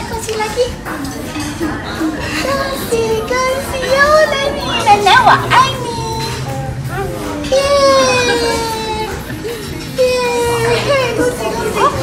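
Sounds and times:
excited voices talking: 1.6s - 12.0s.

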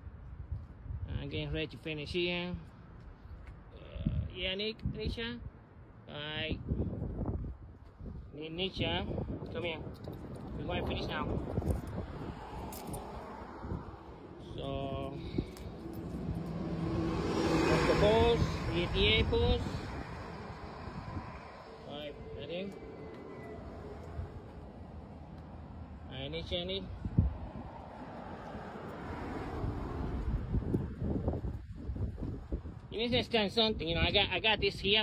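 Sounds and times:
wind buffeting microphone: 6.4s - 26.0s, 26.7s - 35.0s
vehicle engine rumble: 6.8s - 33.3s.

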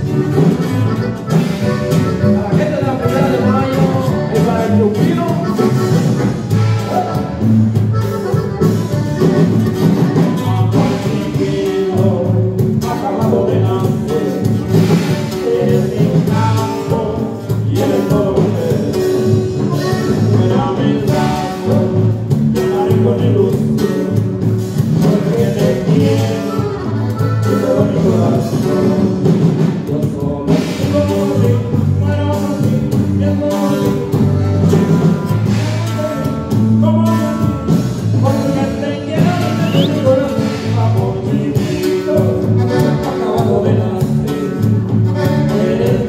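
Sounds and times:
drum hits: 0.0s - 46.0s
live band playing dance music: 0.0s - 46.0s
rhythmic bass line: 0.0s - 46.0s.

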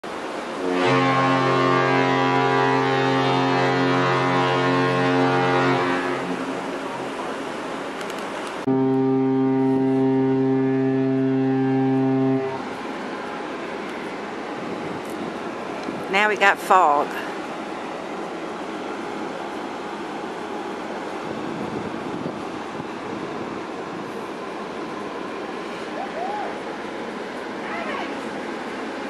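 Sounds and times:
ship's fog horn blasts: 0.5s - 6.7s, 8.6s - 13.0s.

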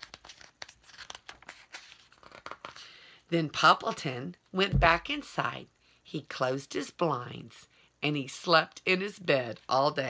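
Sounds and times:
paper pages rustling: 0.0s - 2.8s.

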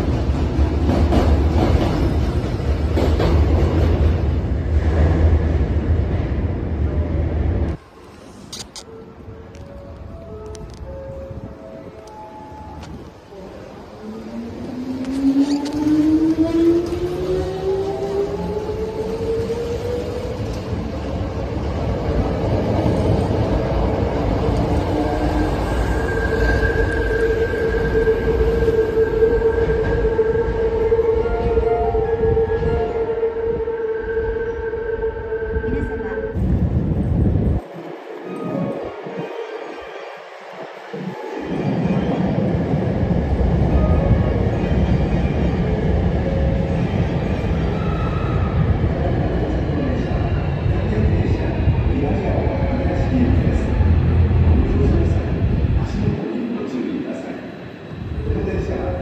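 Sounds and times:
electric train passing: 0.0s - 59.0s.

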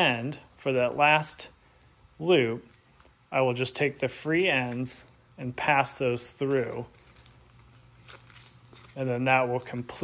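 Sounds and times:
extension cord rustling: 0.4s - 10.0s.

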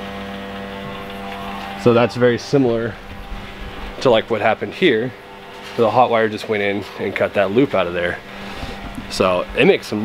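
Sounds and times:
hot-wire foam cutter humming: 0.0s - 10.0s.

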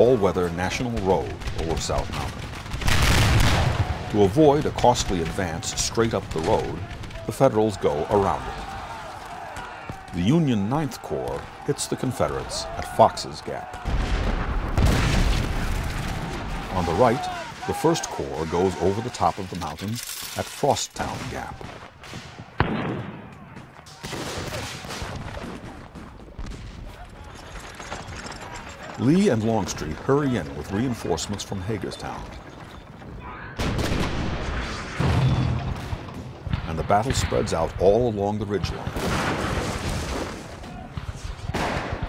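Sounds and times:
rattle of scattered gunfire: 0.4s - 7.6s
men shouting: 3.9s - 13.9s, 16.5s - 19.2s
musket shot: 21.0s - 25.8s, 39.0s - 42.0s.

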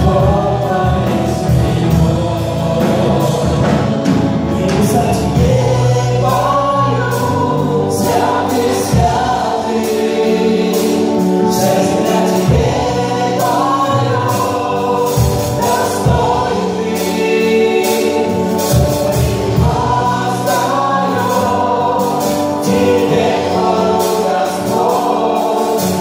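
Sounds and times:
band with guitars and drums: 0.0s - 26.0s
drum and cymbal strokes: 0.0s - 26.0s
people singing together: 0.0s - 26.0s.

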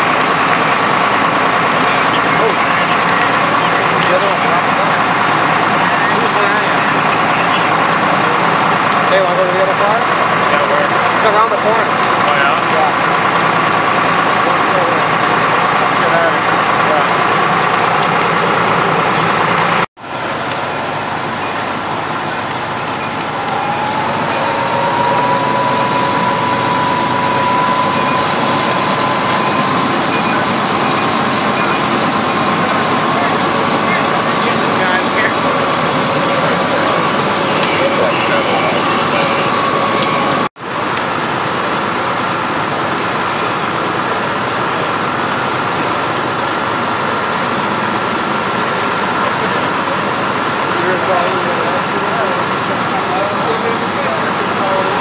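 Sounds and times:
fire engine drone: 0.0s - 55.0s
rising whine: 0.0s - 55.0s.

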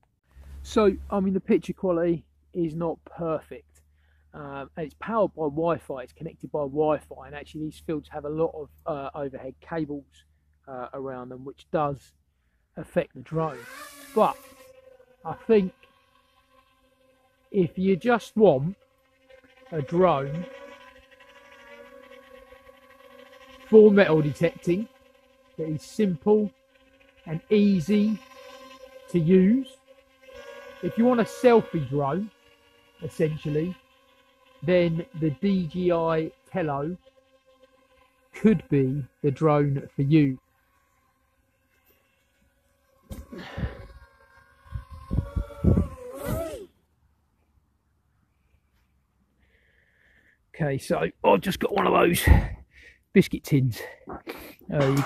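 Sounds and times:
quadcopter propeller hum: 0.0s - 46.8s, 49.4s - 53.1s, 54.3s - 55.0s.

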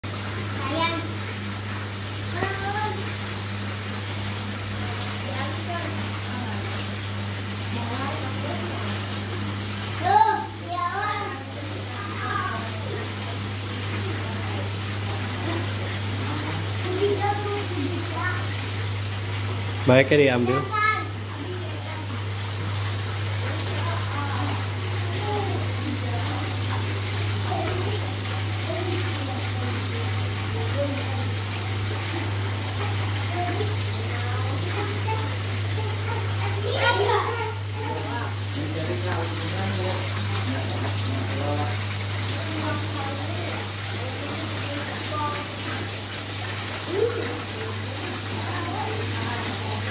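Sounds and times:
water rushing and bubbling: 0.0s - 49.9s.

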